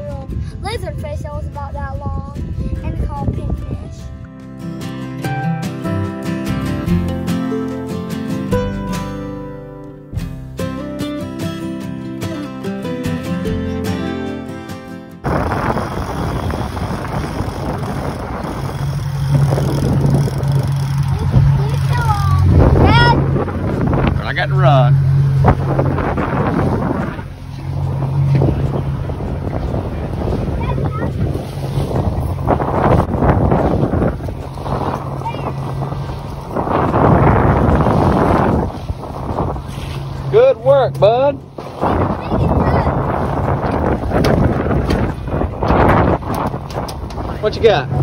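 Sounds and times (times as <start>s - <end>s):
wind buffeting microphone: 0.0s - 4.3s, 15.2s - 48.0s
motorboat engine humming: 0.0s - 48.0s
water rushing past hull: 15.2s - 48.0s.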